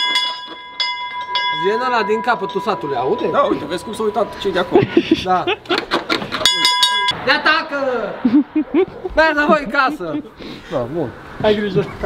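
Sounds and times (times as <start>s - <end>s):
tower bell ringing: 0.0s - 5.0s, 6.4s - 7.2s
man talking: 1.5s - 5.6s, 6.4s - 8.3s, 9.1s - 12.0s.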